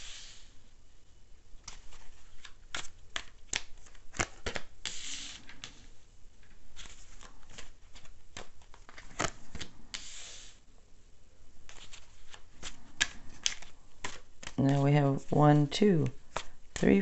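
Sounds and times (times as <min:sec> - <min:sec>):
cards sliding rustle: 0:00.0 - 0:00.6, 0:01.6 - 0:10.6, 0:11.6 - 0:14.6, 0:16.0 - 0:17.0
cards snapping and flicking: 0:02.4 - 0:05.8, 0:07.2 - 0:10.4, 0:11.7 - 0:14.6.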